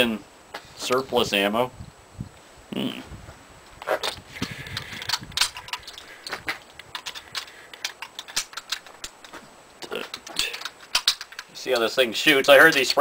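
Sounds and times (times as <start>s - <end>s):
cartridges clicking and rattling: 3.8s - 13.0s.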